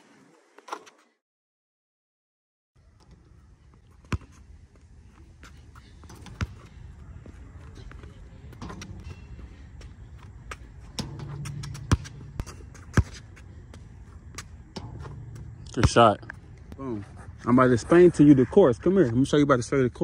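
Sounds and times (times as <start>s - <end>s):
basketball bouncing on asphalt: 3.0s - 17.0s.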